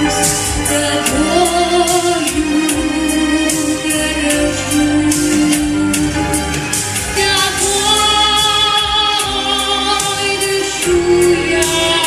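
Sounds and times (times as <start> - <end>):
girl singing into microphone: 0.0 - 6.1
backing track with steady beat: 0.0 - 12.0.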